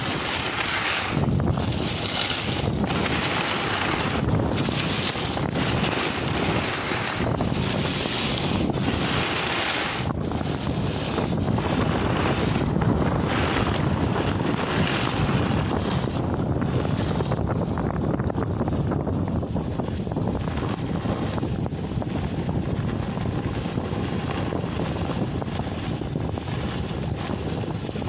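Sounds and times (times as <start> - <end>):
snowboard sliding through snow: 0.0 - 28.0
wind buffeting microphone: 0.0 - 28.0.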